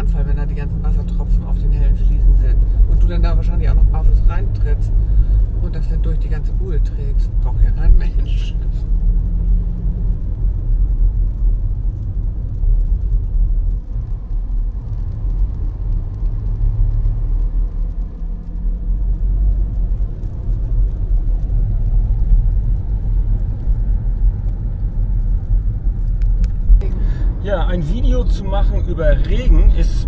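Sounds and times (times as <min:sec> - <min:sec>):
car engine and tyre noise: 0:00.0 - 0:30.0.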